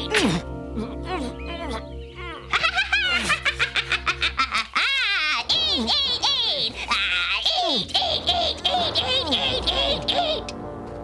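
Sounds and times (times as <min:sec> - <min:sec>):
orchestral background music: 0:00.0 - 0:11.0
high cartoon laughter: 0:01.4 - 0:10.4.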